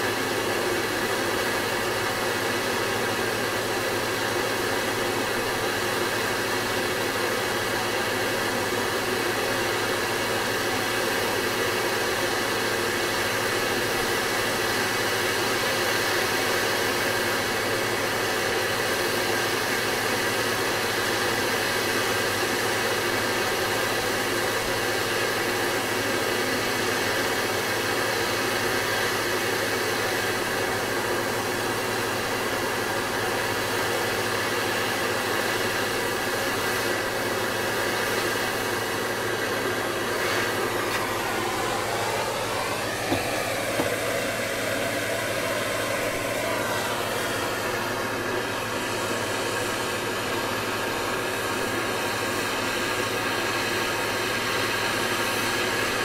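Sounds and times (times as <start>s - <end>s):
gas torch flame hissing: 0.0s - 56.0s.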